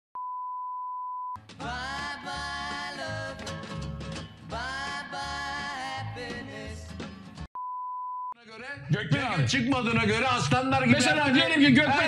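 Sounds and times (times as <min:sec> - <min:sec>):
steady test-tone beep: 0:00.2 - 0:01.4, 0:07.6 - 0:08.4
person singing song: 0:01.5 - 0:03.8, 0:04.4 - 0:07.0.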